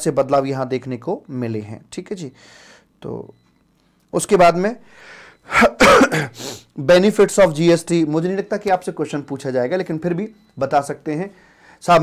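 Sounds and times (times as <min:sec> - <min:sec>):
breath in: 0:04.9 - 0:05.4
man coughing: 0:05.5 - 0:06.4.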